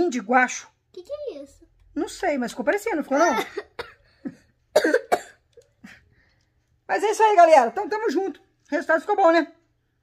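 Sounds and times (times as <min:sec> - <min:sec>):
person coughing: 0:03.3 - 0:06.0.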